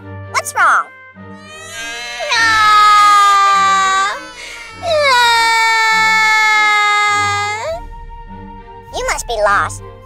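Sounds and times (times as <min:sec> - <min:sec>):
child crying: 0:01.4 - 0:07.8.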